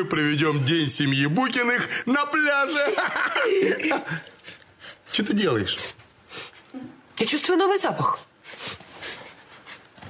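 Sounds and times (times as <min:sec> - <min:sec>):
person sniffing: 0:05.8 - 0:06.6.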